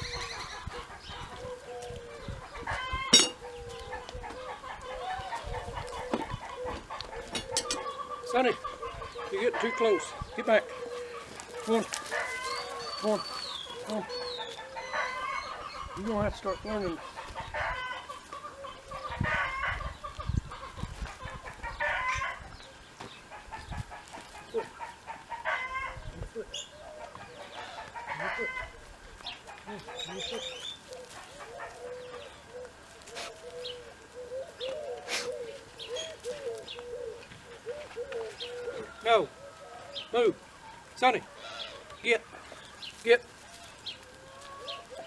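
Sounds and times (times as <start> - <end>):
chickens clucking: 0.0 - 45.0.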